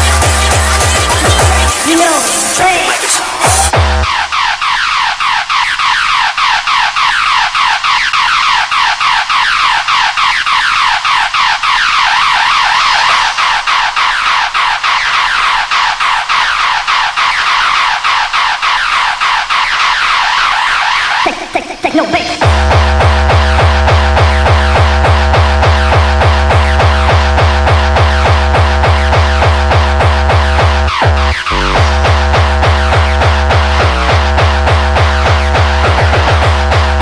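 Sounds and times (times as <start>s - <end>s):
electronic falling-pitch sweeps: 0.0s - 21.3s
low electronic sound: 22.4s - 37.0s.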